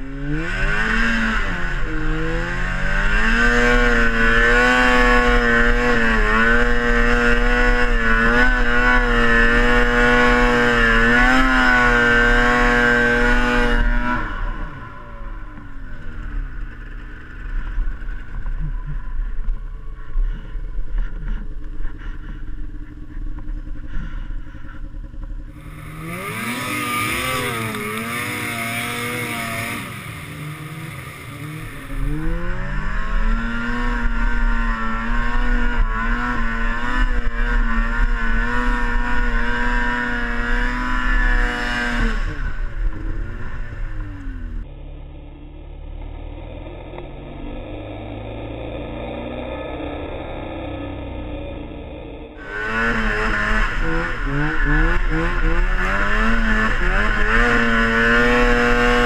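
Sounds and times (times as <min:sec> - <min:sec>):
snowmobile engine revving: 0:00.0 - 0:44.6, 0:46.2 - 0:59.0.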